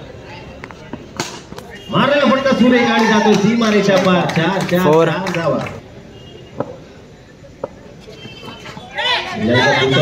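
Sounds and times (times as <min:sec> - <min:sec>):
cricket bat striking ball: 0:06.5 - 0:06.8.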